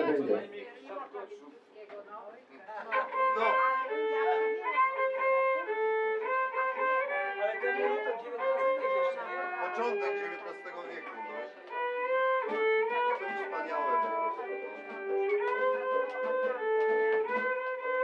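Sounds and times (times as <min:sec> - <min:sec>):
scattered voices: 0:00.0 - 0:05.0, 0:07.1 - 0:11.8, 0:12.4 - 0:16.7
fiddle playing slow melody: 0:02.9 - 0:18.0.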